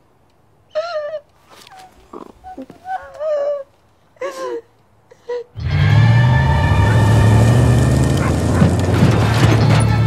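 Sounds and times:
woman sobbing: 2.5s - 5.6s.

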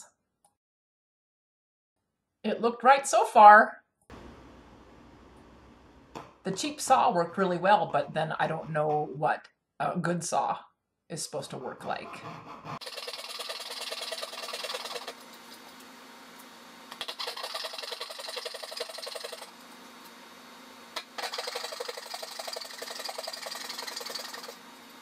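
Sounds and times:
hand saw rasping through wood: 12.1s - 15.2s.

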